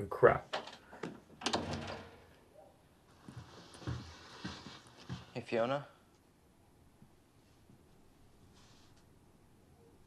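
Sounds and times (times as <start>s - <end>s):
door closing: 0.5s - 2.4s.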